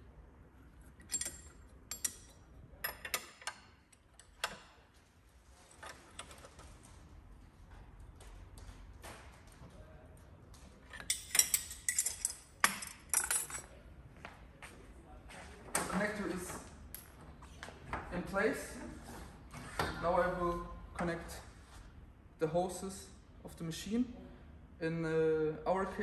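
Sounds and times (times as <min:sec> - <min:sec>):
wrench clinking against metal: 0:01.0 - 0:04.6, 0:10.9 - 0:13.7.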